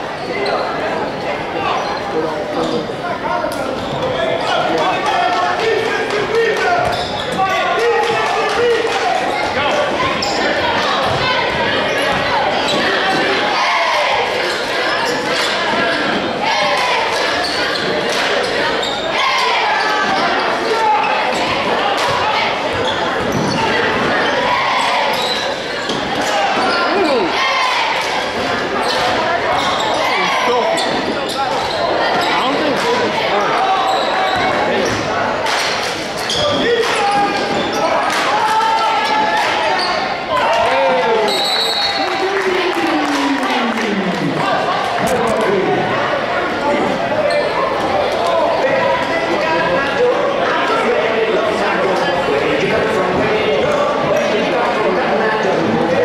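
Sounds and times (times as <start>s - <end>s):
chatter and shouts: 0.0s - 56.0s.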